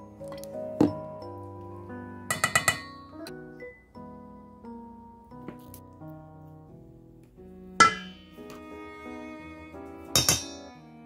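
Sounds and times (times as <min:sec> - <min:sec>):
gentle background music: 0:00.0 - 0:11.0.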